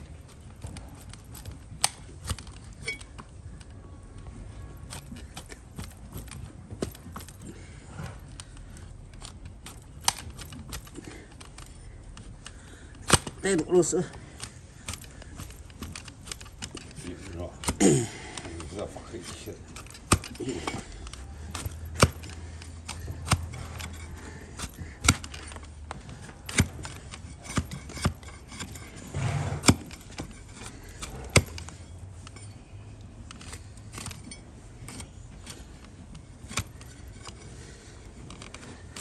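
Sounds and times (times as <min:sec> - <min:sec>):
blade shaving hoof: 0:00.0 - 0:39.0.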